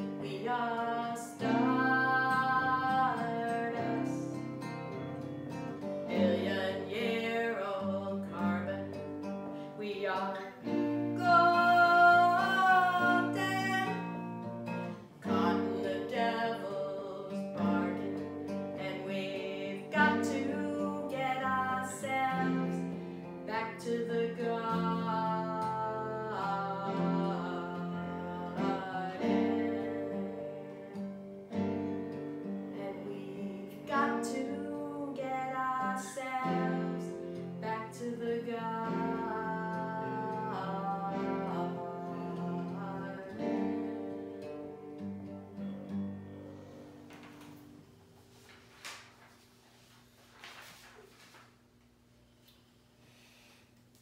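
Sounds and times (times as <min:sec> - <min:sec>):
woman singing: 0:00.0 - 0:05.2, 0:06.0 - 0:14.3, 0:15.2 - 0:44.9
acoustic guitar playing: 0:00.0 - 0:49.2.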